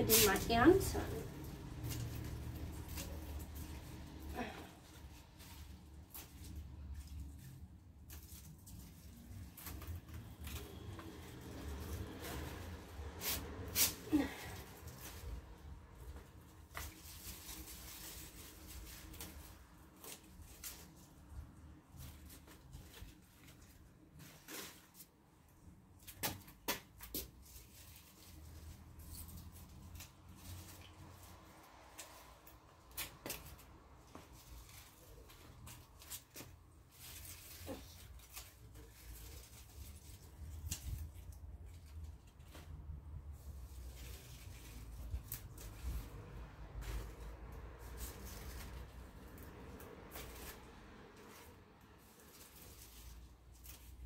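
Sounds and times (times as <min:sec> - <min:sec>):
leaves rustling: 0:00.0 - 0:25.0, 0:43.3 - 0:54.0.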